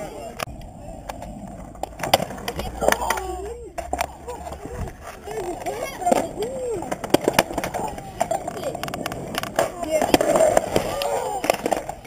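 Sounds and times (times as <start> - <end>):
skateboard deck clattering: 0.0 - 12.0
skateboard wheels rolling on concrete: 0.0 - 12.0.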